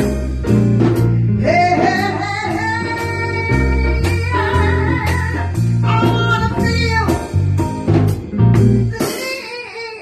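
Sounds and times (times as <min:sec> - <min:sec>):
walking bass line: 0:00.0 - 0:09.1
small jazz band: 0:00.0 - 0:10.0
person singing long notes: 0:01.2 - 0:07.1, 0:08.8 - 0:10.0.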